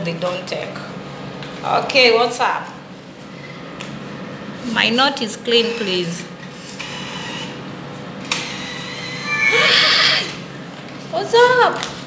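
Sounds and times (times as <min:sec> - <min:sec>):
machine hum: 0:00.0 - 0:11.5
woman laughing: 0:09.5 - 0:10.3.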